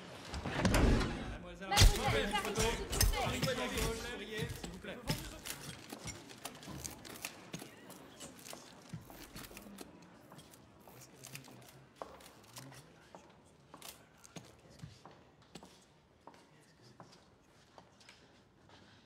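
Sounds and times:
crowd murmuring in a hall: 0.0 - 19.0.

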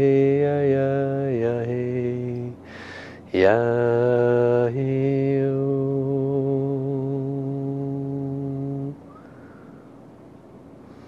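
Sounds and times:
man chanting a held vowel: 0.0 - 9.0.

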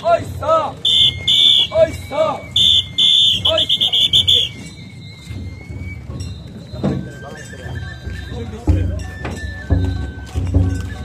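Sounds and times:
deep drum beats: 4.4 - 11.0.

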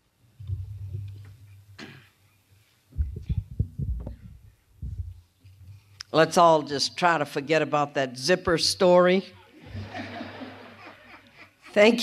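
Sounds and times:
microphone handling thumps: 0.4 - 2.1, 2.9 - 5.8.

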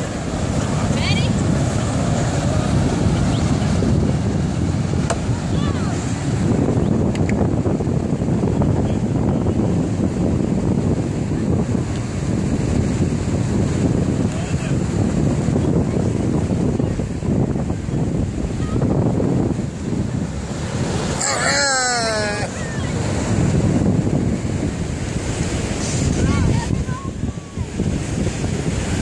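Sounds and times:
surf washing: 0.0 - 29.0
wind buffeting microphone: 0.0 - 29.0.

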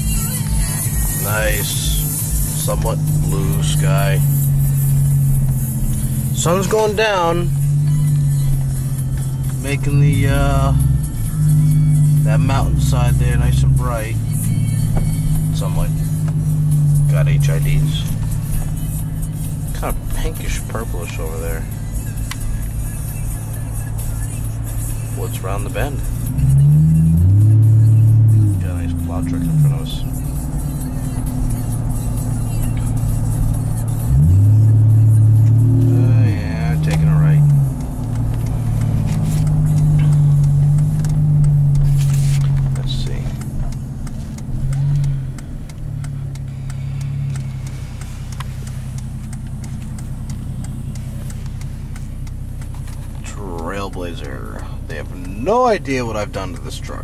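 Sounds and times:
engine and road drone: 0.0 - 57.0
music playing in vehicle: 0.0 - 57.0
faint ticks: 36.9 - 55.5.

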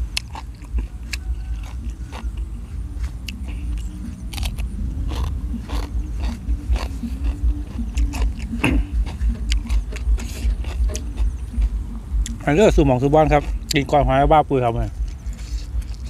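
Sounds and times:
crunchy chewing: 0.0 - 16.0
bite into raw vegetable: 0.1 - 12.4.

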